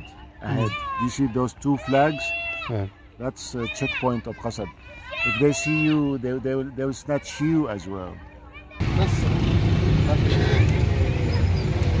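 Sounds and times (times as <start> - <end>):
car driving in traffic: 8.8 - 12.0.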